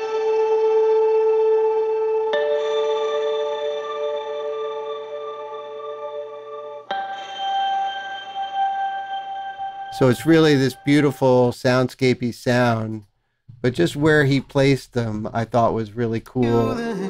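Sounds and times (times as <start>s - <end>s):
ambient electric guitar notes: 0.0s - 11.2s.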